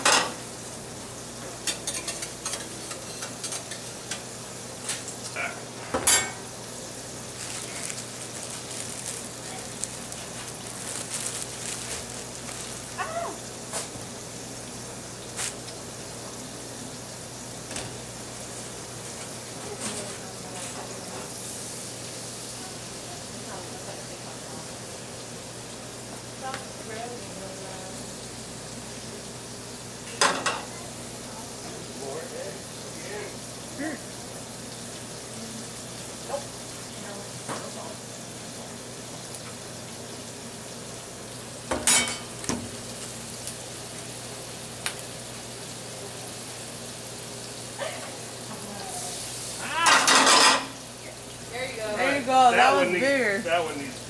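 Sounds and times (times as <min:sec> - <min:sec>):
pans and utensils clanking: 0:00.0 - 0:00.5, 0:01.4 - 0:06.6, 0:19.1 - 0:21.4, 0:30.0 - 0:30.8, 0:41.6 - 0:42.8, 0:49.8 - 0:50.9
food sizzling in pans: 0:00.0 - 0:54.0.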